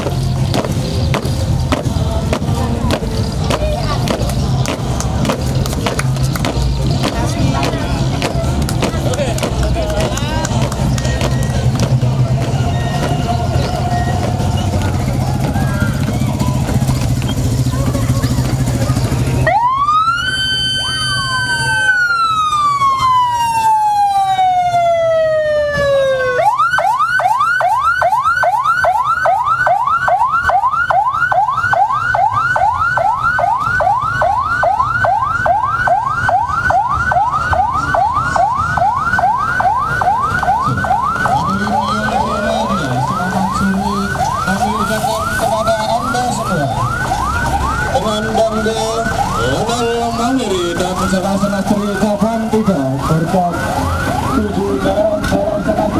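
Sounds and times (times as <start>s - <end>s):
police siren wailing: 0.0s - 55.9s
siren fast yelp: 19.0s - 55.9s.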